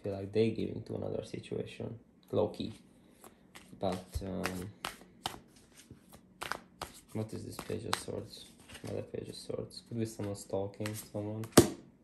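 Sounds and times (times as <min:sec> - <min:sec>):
cards shuffled by hand: 0:02.7 - 0:09.2, 0:10.1 - 0:11.8.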